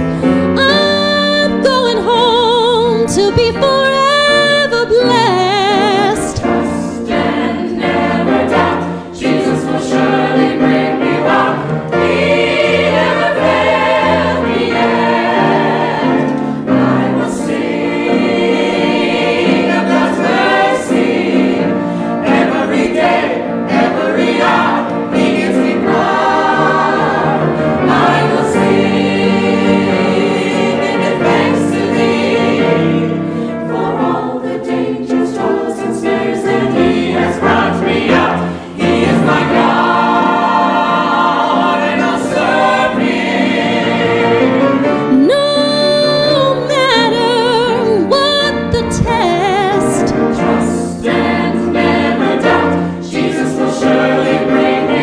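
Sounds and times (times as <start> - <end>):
choir singing in harmony: 0.0 - 55.0.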